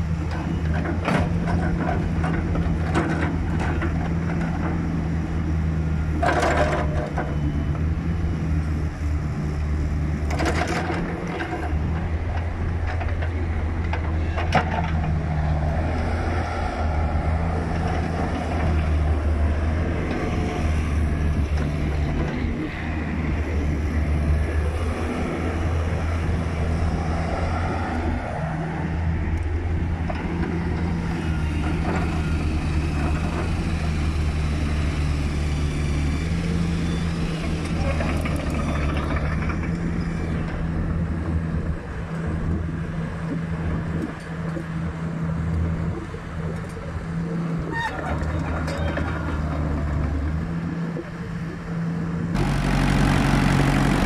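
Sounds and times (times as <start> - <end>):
excavator diesel engine running: 0.0 - 44.0, 46.2 - 54.0.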